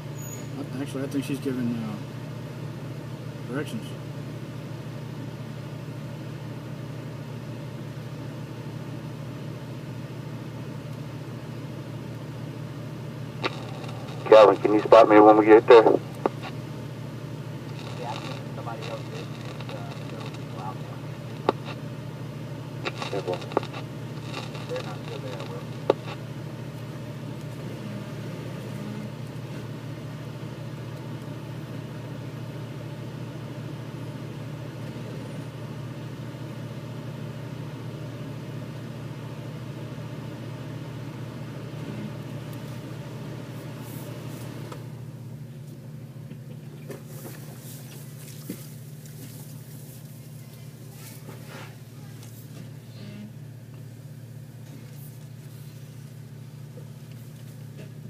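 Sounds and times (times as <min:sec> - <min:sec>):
vehicle engine idling: 0:00.0 - 0:58.0
low hum: 0:02.0 - 0:58.0.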